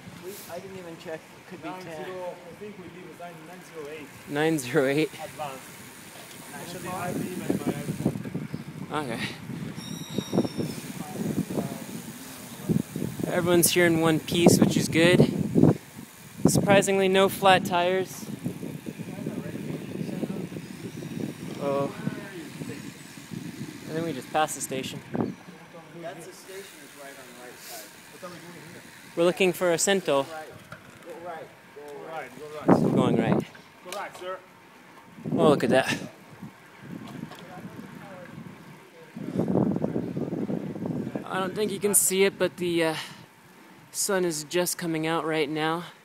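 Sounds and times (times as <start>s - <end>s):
bicycle road rumble: 0.0s - 46.0s
wind buffeting microphone: 6.5s - 25.5s, 32.6s - 33.5s, 35.1s - 42.0s.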